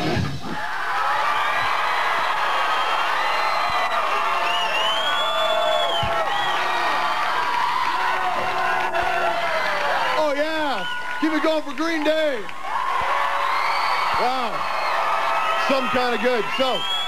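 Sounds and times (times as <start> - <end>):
crowd cheering and clapping: 0.0 - 17.0
high whoops and screams: 0.5 - 11.6, 12.5 - 17.0.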